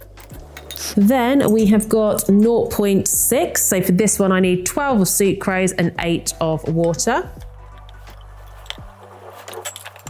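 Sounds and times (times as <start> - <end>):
glass tubes clinking: 0.0 - 2.4, 7.5 - 10.0.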